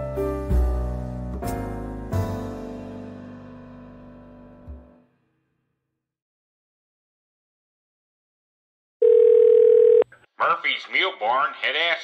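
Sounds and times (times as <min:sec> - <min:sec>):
man speaking: 0:10.4 - 0:12.0.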